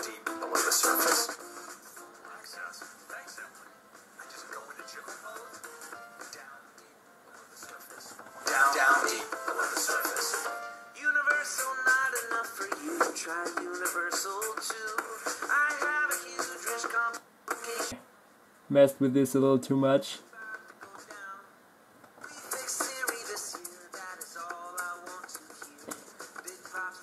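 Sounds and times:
distorted music through laptop speakers: 0.0s - 18.0s, 20.3s - 21.4s, 22.2s - 27.0s
person speaking: 18.7s - 20.5s.

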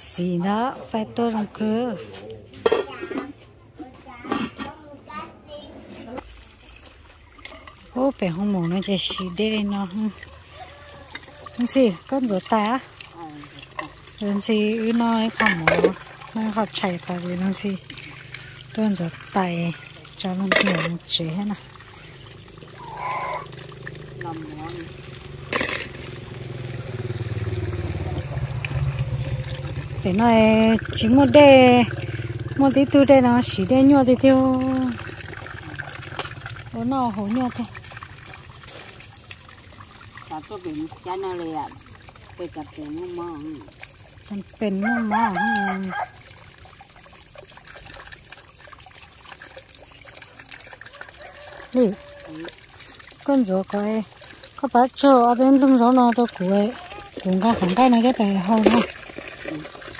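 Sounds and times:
hands rinsing in water: 6.2s - 59.9s
water pouring onto rocks: 6.2s - 59.9s
person calling: 22.8s - 23.6s.

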